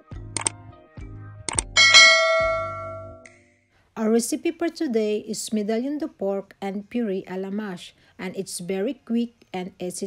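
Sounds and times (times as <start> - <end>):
bright bell ding: 1.8 - 3.2.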